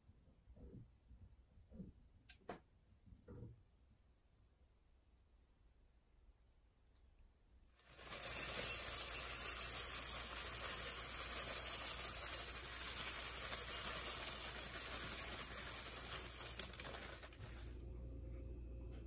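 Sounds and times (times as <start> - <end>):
cornflakes poured into bowl: 7.8 - 17.8.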